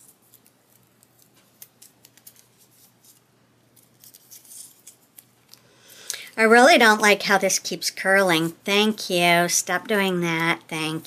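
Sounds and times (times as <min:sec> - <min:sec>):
tape ticks and crackles: 0:00.0 - 0:06.2.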